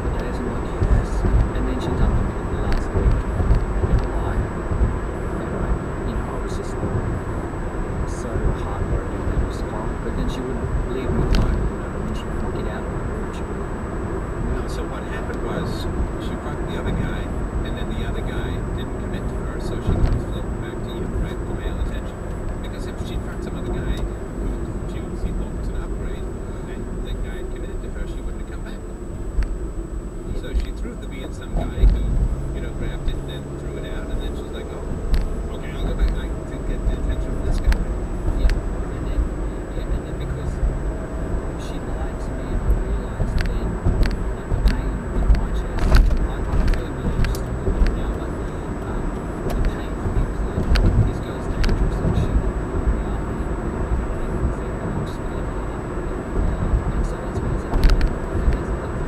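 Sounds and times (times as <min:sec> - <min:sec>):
tyres rumbling on asphalt: 0:00.0 - 0:59.0
light clicks and knocks: 0:42.4 - 0:53.2, 0:56.4 - 0:58.8.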